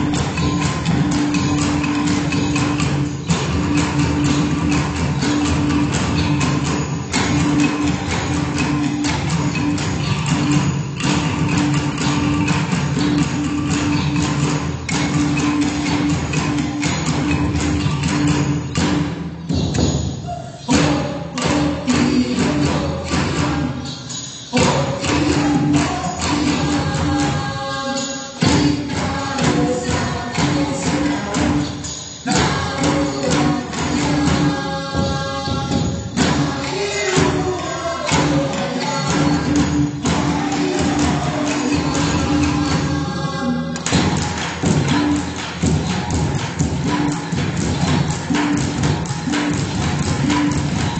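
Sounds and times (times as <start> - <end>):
heavy percussive thuds: 0.0 - 27.7, 28.4 - 50.9
heavy percussion thuds: 28.4 - 50.9.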